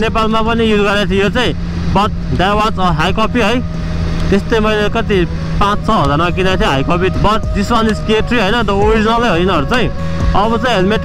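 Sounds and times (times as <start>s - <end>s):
man talking: 0.0s - 11.0s
motorcycle engine running: 0.0s - 11.0s
wind and road noise: 0.0s - 11.0s.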